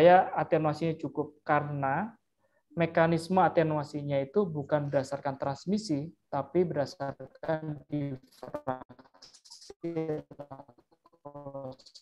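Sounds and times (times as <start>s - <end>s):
man speaking over video call: 0.0s - 12.0s.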